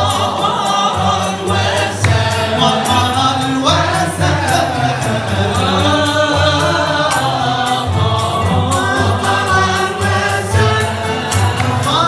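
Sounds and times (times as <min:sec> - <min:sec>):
bowed violins and cello: 0:00.0 - 0:12.0
voices singing together: 0:00.0 - 0:12.0.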